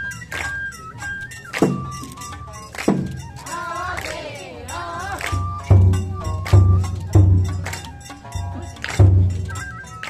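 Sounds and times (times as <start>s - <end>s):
bamboo flute note: 5.3s - 10.0s.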